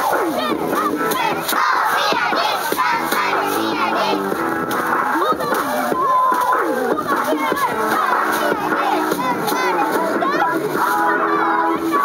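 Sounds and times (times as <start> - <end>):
children shouting a cheer: 0.0 - 4.3, 5.5 - 12.0
music playing: 0.0 - 12.0.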